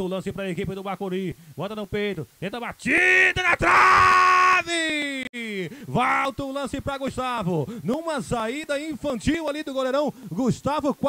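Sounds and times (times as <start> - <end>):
male sports commentator speaking: 0.0 - 3.8, 4.5 - 11.0.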